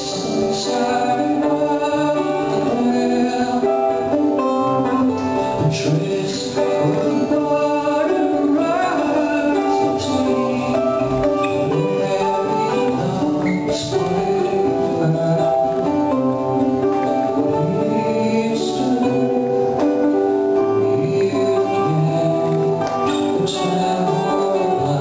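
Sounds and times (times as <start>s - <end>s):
guitar picking bright melody: 0.0s - 25.0s
man singing: 0.0s - 25.0s
sustained keyboard chords: 0.0s - 25.0s.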